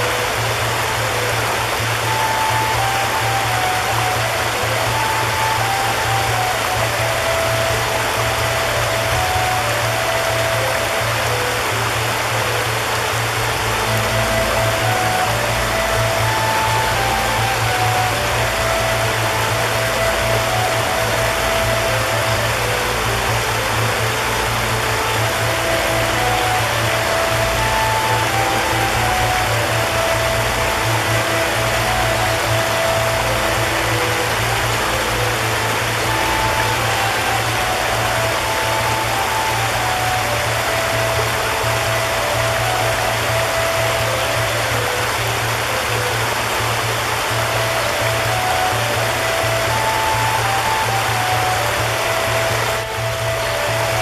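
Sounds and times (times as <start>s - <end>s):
slow soft music: 0.0s - 54.0s
stream rushing over stones: 0.0s - 54.0s.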